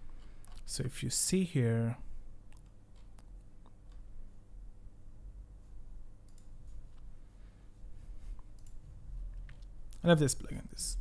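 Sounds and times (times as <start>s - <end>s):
low electrical hum: 0.0s - 11.0s
computer mouse clicks: 6.2s - 7.1s, 8.5s - 8.8s.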